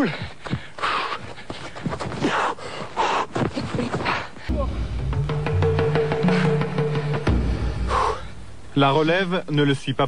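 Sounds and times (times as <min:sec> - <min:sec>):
man breathing hard: 0:00.0 - 0:04.7, 0:06.2 - 0:08.6
short forceful breath: 0:06.2 - 0:08.5.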